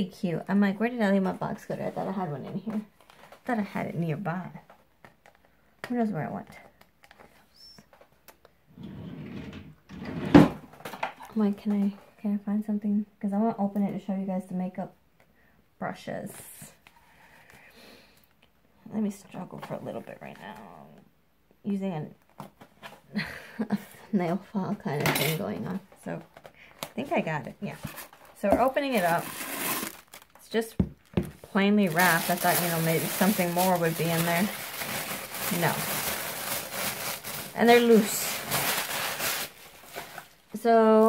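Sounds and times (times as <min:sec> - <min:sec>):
plastic wrapping crinkling: 0:27.2 - 0:41.0
packaging rustling: 0:27.7 - 0:40.6.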